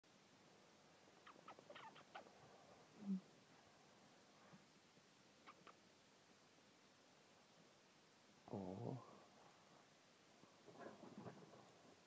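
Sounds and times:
rat squeaking: 0:01.2 - 0:02.3, 0:05.4 - 0:05.8.

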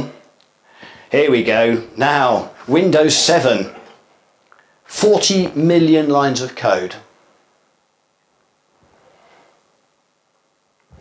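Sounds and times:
faint soft sound: 0:07.2 - 0:11.0.

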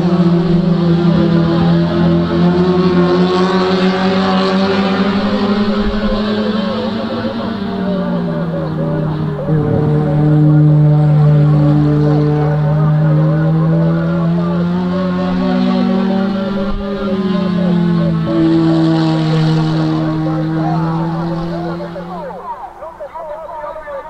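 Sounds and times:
racing car engines at high revs: 0:00.0 - 0:24.0.

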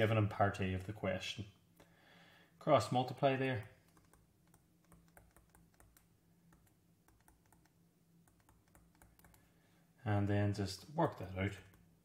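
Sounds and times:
faint steady hum: 0:00.0 - 0:12.0
stylus tapping a touchscreen: 0:03.7 - 0:09.4.

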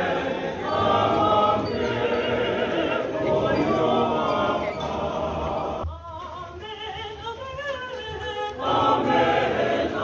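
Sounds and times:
congregation singing a hymn: 0:00.0 - 0:05.9, 0:08.5 - 0:10.0.

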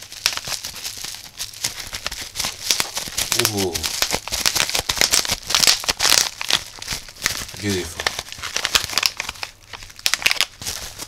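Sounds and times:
bubble wrap crinkling: 0:00.0 - 0:11.0.

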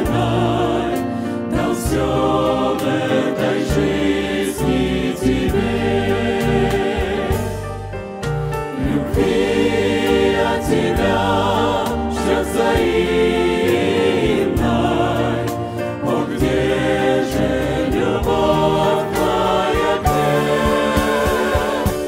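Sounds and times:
choir singing a hymn: 0:00.0 - 0:22.0
instrumental accompaniment bass notes: 0:00.0 - 0:22.0.

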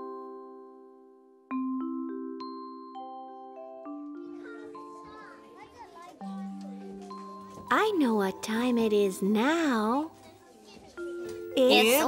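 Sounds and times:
soft music of held notes: 0:00.0 - 0:12.0
children chattering: 0:04.1 - 0:12.0.

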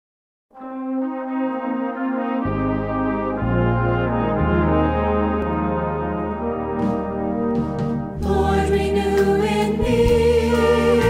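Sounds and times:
brass band playing sustained chords: 0:00.5 - 0:11.0
deep bass notes: 0:02.4 - 0:11.0.

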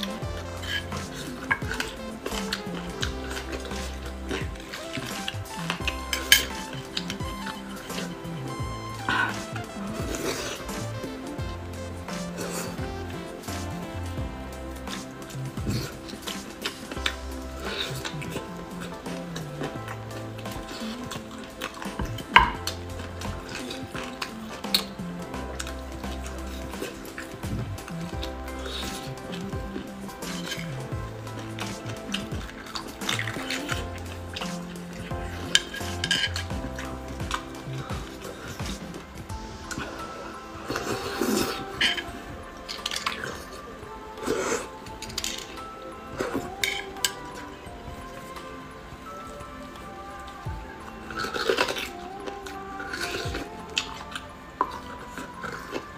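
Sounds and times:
background music with bass line: 0:00.0 - 0:55.9
wet sucking: 0:00.0 - 0:55.9.

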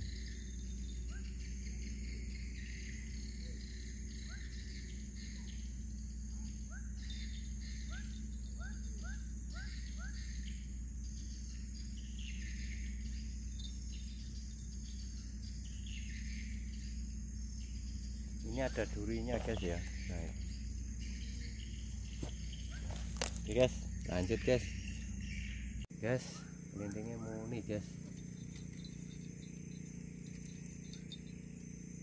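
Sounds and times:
bird chirping: 0:00.0 - 0:32.0
crickets chirping: 0:00.0 - 0:32.0
low steady rumble: 0:00.0 - 0:32.0.

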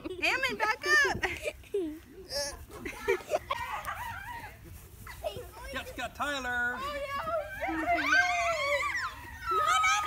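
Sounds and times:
girl laughing and squealing: 0:02.8 - 0:05.2.

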